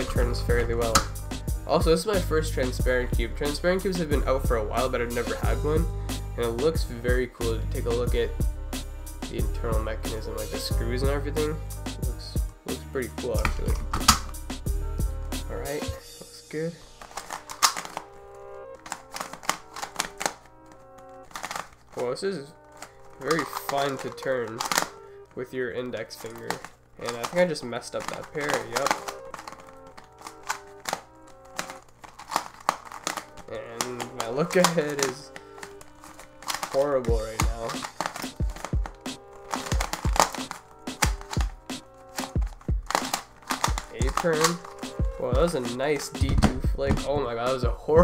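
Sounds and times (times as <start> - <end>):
background music with held notes: 0.0 - 48.0
plastic cube clicks and clacks: 17.0 - 18.1, 18.8 - 22.0, 22.8 - 25.0, 25.9 - 47.1.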